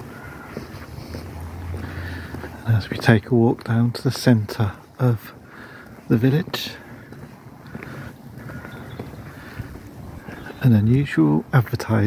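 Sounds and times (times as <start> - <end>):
footsteps on tarmac: 0.0 - 12.0
wind on microphone: 8.5 - 10.6.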